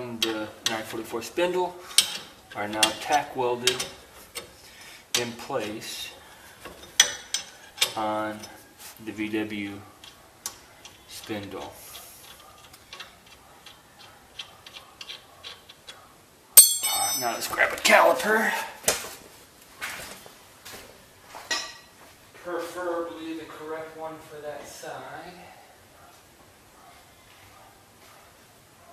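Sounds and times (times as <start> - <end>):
metallic clank with ring: 16.6 - 17.5
metal parts clinking: 16.6 - 17.6.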